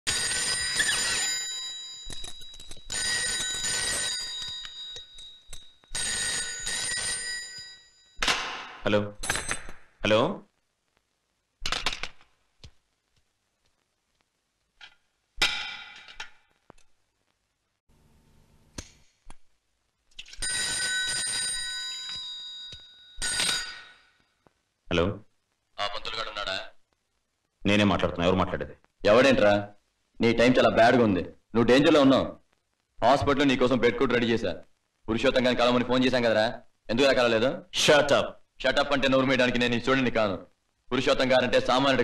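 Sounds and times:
telephone ringing: 0:00.1 - 0:08.2, 0:20.4 - 0:24.2.

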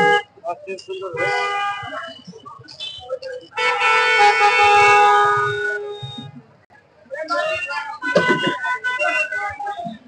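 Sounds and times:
vehicle horn blast: 0:03.6 - 0:06.3.

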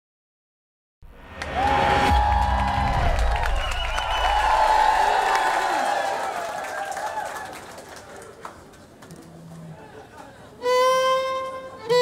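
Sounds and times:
logo ident swell of noise: 0:01.1 - 0:05.4.

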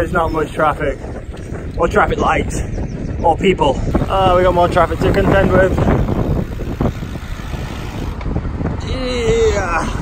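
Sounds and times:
road noise: 0:00.0 - 0:10.0
wind rush on microphone: 0:00.0 - 0:10.0.

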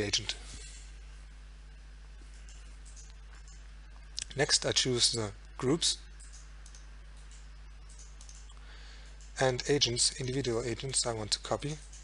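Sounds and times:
low electrical hum and hiss: 0:00.0 - 0:12.0
computer mouse clicks: 0:02.2 - 0:03.6, 0:06.2 - 0:08.6.

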